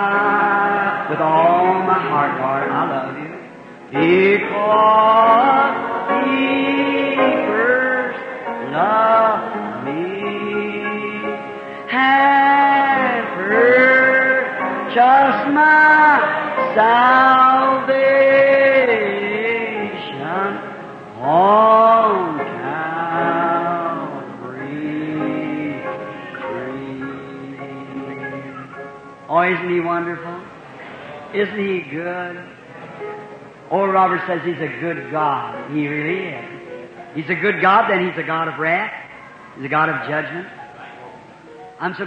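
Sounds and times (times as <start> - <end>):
person singing slow worship song: 0.0 - 42.0.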